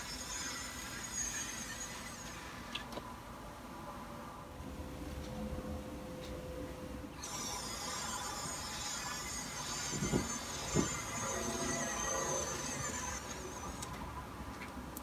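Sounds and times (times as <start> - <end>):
curtain motor whining: 0.0 - 2.8, 7.2 - 14.0.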